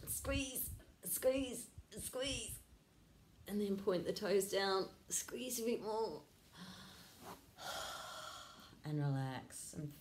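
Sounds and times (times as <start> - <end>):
woman speaking: 0.0 - 2.7, 3.4 - 6.3, 8.8 - 10.0
woman breathing out: 6.5 - 8.8.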